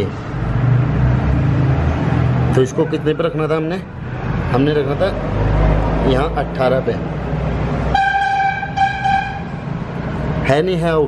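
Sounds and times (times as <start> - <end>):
steady horn-like tone: 7.9 - 9.6.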